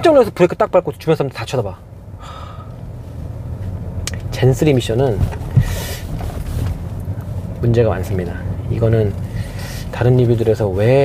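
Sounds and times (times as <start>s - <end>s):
car cabin rumble: 0.0s - 11.0s
short breath: 2.2s - 2.8s, 5.6s - 6.1s, 9.3s - 9.9s.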